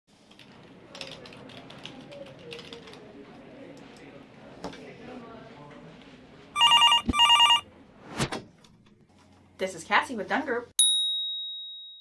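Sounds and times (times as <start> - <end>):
desk phone ringing: 6.6 - 7.7.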